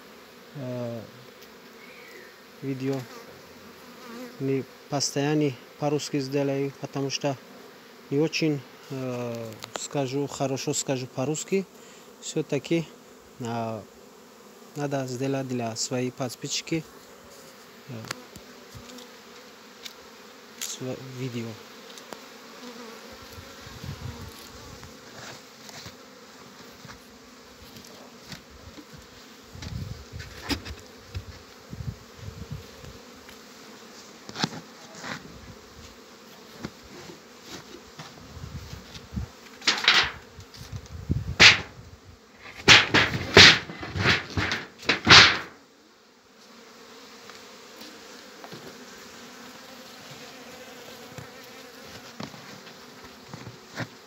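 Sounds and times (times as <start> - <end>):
honeybees buzzing: 0.0 - 54.0
knocks and scrapes of hive box: 16.5 - 45.7, 46.4 - 54.0.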